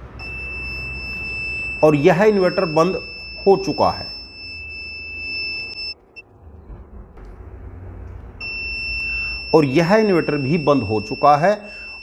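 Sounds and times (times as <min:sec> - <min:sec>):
high-pitched alarm whistle: 0:00.2 - 0:06.0, 0:08.4 - 0:12.0
low hum: 0:02.6 - 0:09.6.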